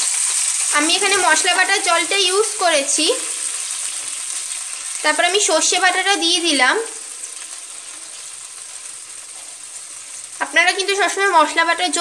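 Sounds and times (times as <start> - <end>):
spices sizzling in hot oil: 0.0 - 12.0.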